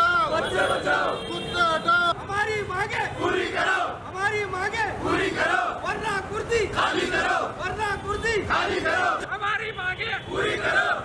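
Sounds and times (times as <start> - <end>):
crowd of men chanting: 0.1 - 1.2, 3.0 - 4.1, 4.8 - 7.6, 8.4 - 9.3, 10.3 - 11.0.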